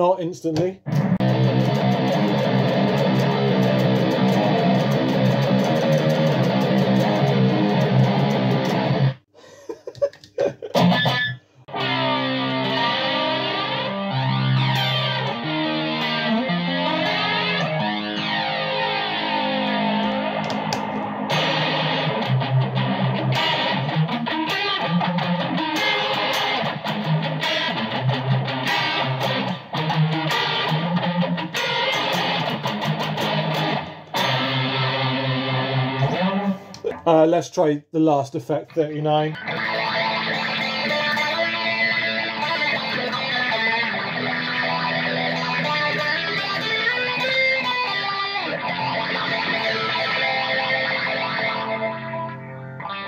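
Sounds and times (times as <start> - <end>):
distorted electric guitar picked fast: 0.8 - 9.2, 10.8 - 36.7, 39.3 - 53.0.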